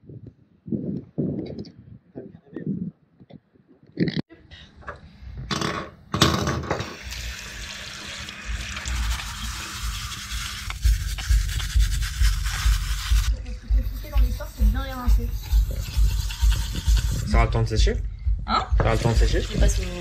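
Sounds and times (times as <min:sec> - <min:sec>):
hand brush scrubbing: 0:08.3 - 0:17.4, 0:18.9 - 0:20.0
background music with steady beat: 0:09.9 - 0:20.0.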